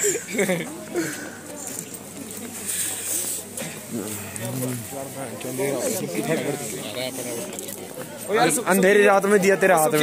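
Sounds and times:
young men talking: 3.5 - 10.0.

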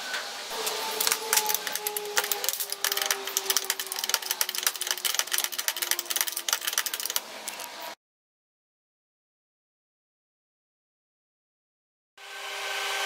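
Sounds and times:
metal parts clicking and tapping: 1.0 - 7.7.

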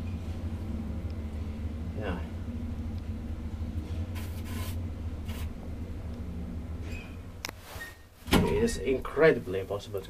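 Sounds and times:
elevator low hum: 0.0 - 10.0
short hisses: 4.2 - 5.5.

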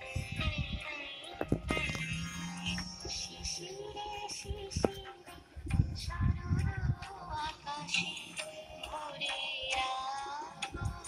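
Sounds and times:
person singing slow melody: 0.0 - 11.0.

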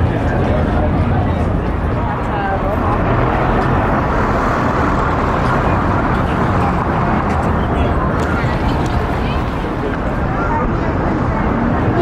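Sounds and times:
city traffic: 0.0 - 12.0
people talking nearby: 0.0 - 12.0.

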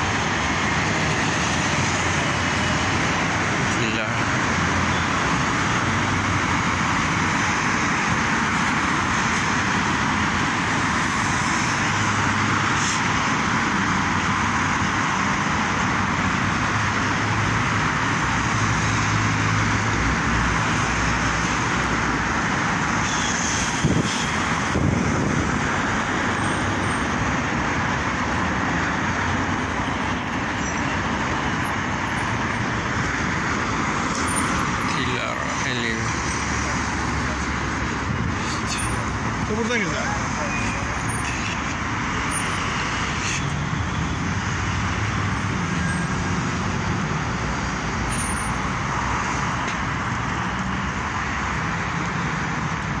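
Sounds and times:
cars driving past: 0.0 - 53.0.

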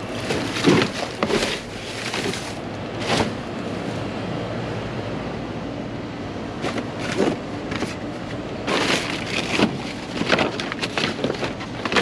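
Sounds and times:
bags rustling and crinkling: 0.0 - 3.5, 8.6 - 12.0
steady background noise: 0.0 - 12.0.

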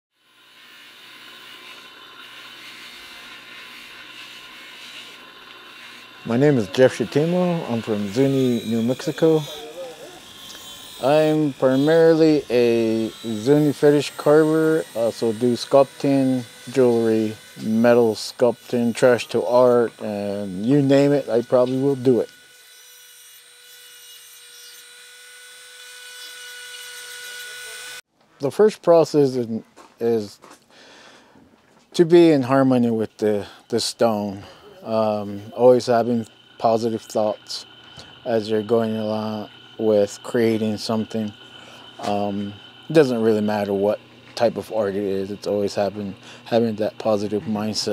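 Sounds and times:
rotary tool grinding stone: 0.2 - 28.0, 32.2 - 47.9.

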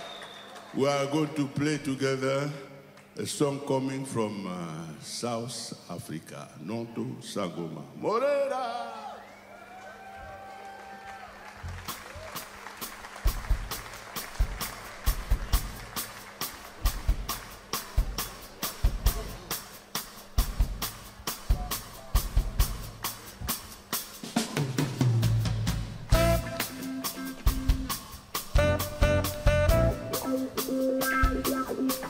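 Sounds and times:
drum kit groove: 11.6 - 32.0.

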